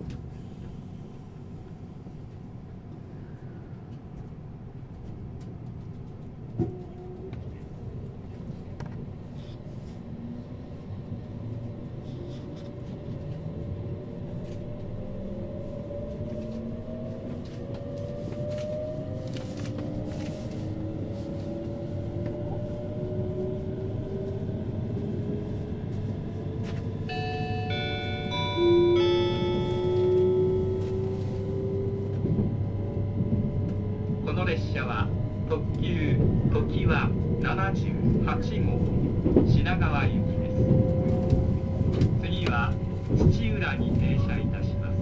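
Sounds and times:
wheels rumbling on rail: 0:00.0 - 0:45.0
multi-note onboard chime: 0:27.1 - 0:30.8
recorded announcement: 0:34.2 - 0:40.6, 0:42.1 - 0:45.0.

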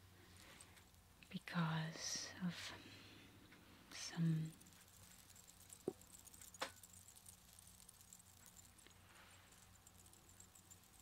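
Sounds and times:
woman whispering: 0:01.2 - 0:02.9, 0:03.9 - 0:04.6.

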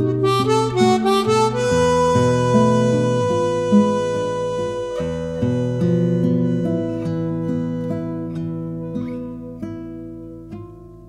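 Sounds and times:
chromatic harmonica: 0:00.0 - 0:09.5
acoustic guitar plucking: 0:00.0 - 0:11.0.

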